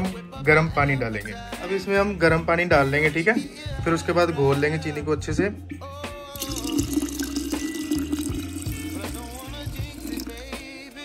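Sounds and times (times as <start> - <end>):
background music: 0.0 - 11.0
water pouring into glass jar: 6.3 - 11.0.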